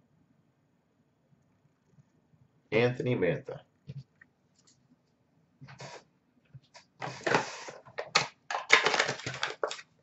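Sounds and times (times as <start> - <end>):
wrappers crinkling: 8.0 - 9.9.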